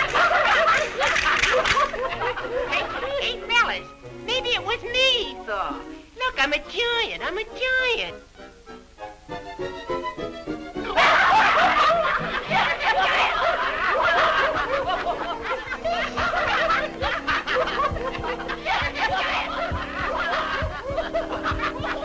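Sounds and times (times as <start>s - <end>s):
group of men laughing: 0.0s - 3.2s, 10.9s - 22.0s
orchestral film music: 0.0s - 22.0s.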